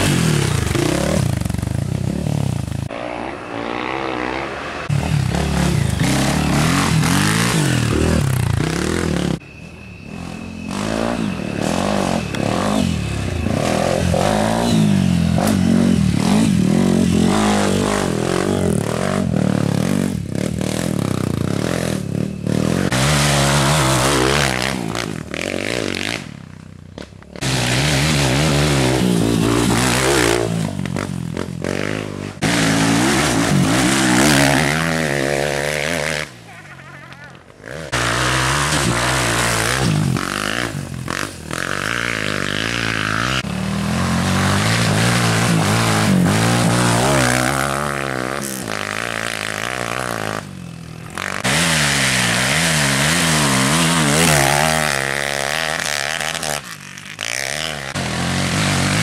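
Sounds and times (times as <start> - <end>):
dirt bikes revving: 0.0 - 59.0.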